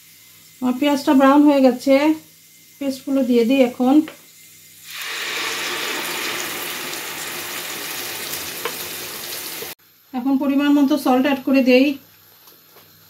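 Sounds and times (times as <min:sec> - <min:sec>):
paste sizzling in frying pan: 0:04.7 - 0:09.8.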